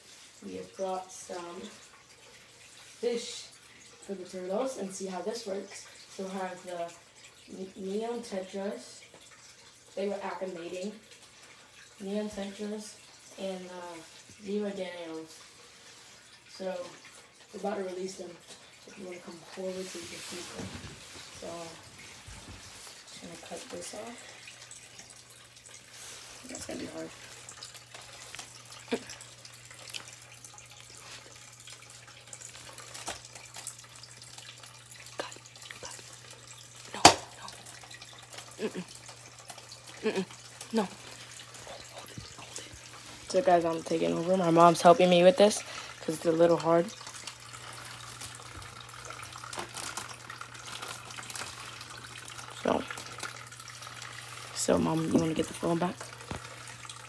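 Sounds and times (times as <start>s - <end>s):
water filter humming: 0.0s - 57.0s
water trickling: 0.0s - 57.0s
plastic bag crinkling: 47.6s - 52.1s.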